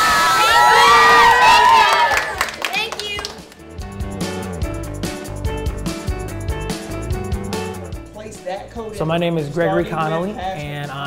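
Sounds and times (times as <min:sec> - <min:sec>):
children cheering and shouting: 0:00.0 - 0:03.3.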